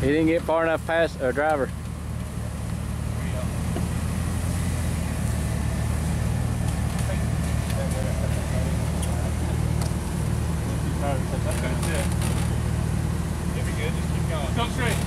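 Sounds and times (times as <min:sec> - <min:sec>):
engine running under load: 0:00.0 - 0:15.0.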